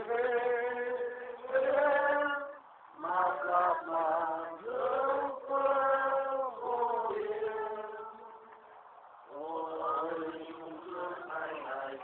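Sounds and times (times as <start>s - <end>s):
voices singing long held notes: 0.0s - 12.0s.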